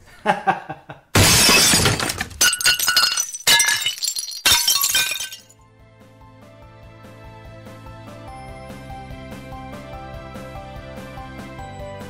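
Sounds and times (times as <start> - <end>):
glass shattering: 1.2 - 5.5.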